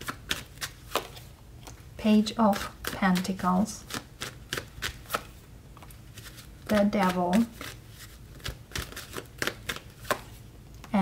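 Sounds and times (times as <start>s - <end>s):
cards clicking and slapping: 0.0s - 1.2s, 3.9s - 10.4s.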